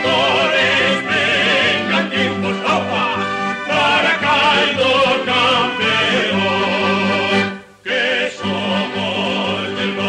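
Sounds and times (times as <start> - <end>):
instrumental accompaniment: 0.0 - 10.0
person singing with vibrato: 0.0 - 10.0.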